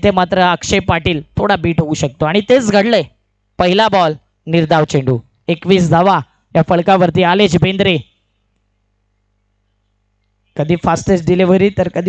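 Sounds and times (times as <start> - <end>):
man speaking: 0.0 - 8.1, 10.6 - 12.0
faint low hum: 0.0 - 12.0.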